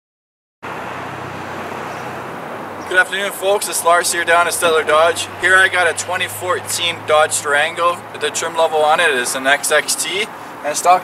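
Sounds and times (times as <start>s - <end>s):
outdoor background noise: 0.6s - 11.0s.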